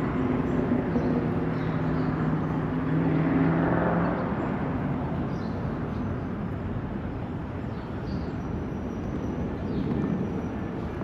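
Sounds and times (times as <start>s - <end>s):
road traffic hum and tyre noise: 0.0s - 11.0s.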